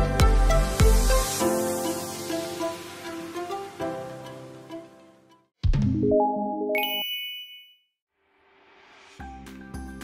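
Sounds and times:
bright bell ding: 0:06.8 - 0:07.9.

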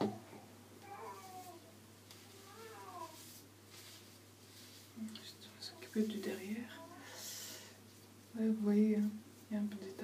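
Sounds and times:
faint meow-like cries: 0:00.8 - 0:03.3.

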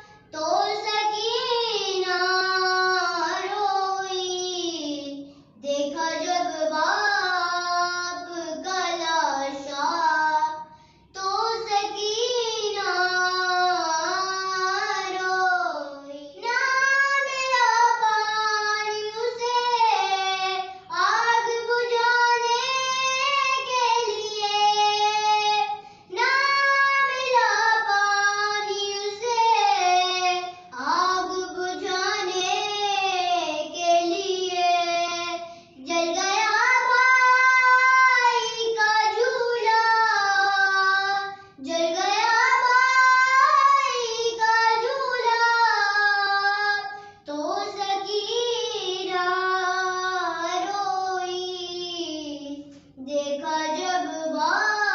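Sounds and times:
girl singing unaccompanied: 0:00.0 - 0:54.9.

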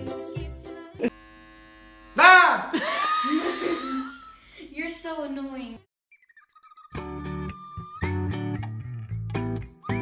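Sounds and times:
children's music: 0:00.0 - 0:01.1, 0:06.4 - 0:10.0
electric hair clippers buzzing: 0:01.0 - 0:02.8.

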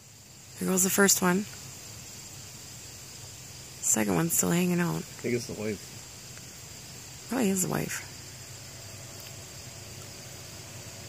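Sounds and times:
insect chorus: 0:00.0 - 0:11.0.

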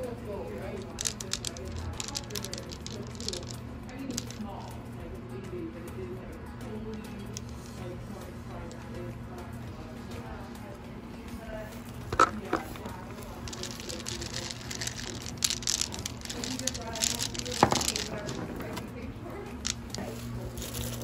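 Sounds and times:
stones clicking and rattling: 0:00.4 - 0:04.9, 0:06.8 - 0:08.9, 0:12.0 - 0:21.0.

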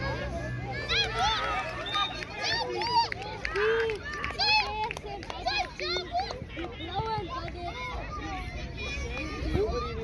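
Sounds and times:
children shouting: 0:00.0 - 0:10.0.

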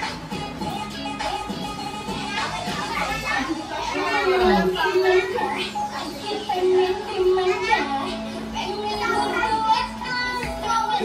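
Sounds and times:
children shouting and chattering: 0:00.0 - 0:11.0
music playing: 0:00.0 - 0:11.0.

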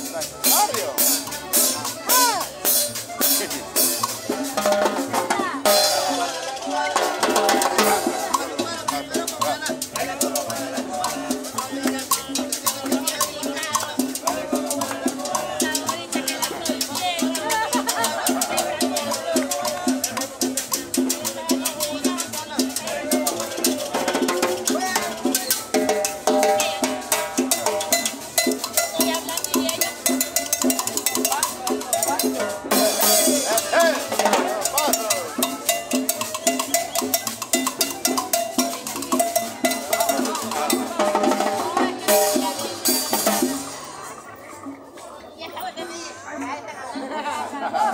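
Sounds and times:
salsa band playing: 0:00.0 - 0:47.9.

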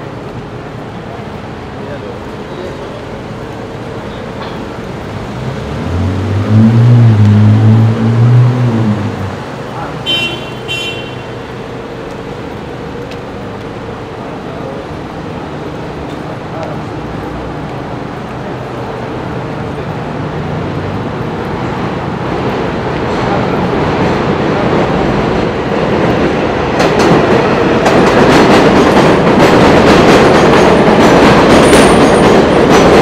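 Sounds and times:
street traffic hum: 0:00.0 - 0:33.0
vehicle engine passing close: 0:05.0 - 0:10.0.

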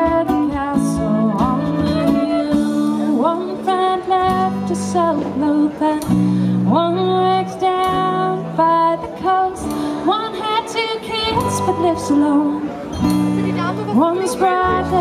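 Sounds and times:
woman singing: 0:00.0 - 0:12.8, 0:13.6 - 0:15.0
strummed acoustic guitar: 0:00.0 - 0:15.0.

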